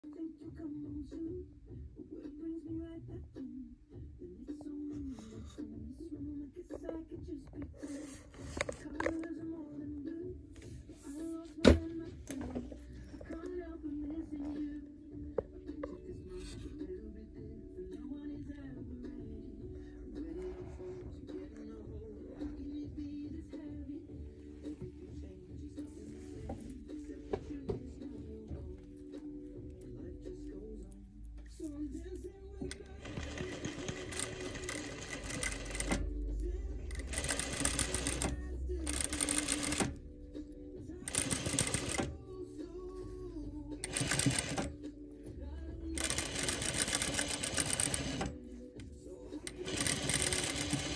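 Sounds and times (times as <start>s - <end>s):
background music with singing: 0.0s - 50.9s
sewing machine stitching: 32.7s - 36.0s, 36.9s - 40.0s, 41.1s - 42.1s, 43.8s - 44.7s, 46.0s - 48.3s, 49.4s - 50.9s.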